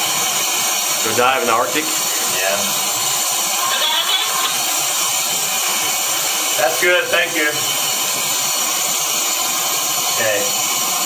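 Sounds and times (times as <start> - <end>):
air compressor running: 0.0 - 11.0.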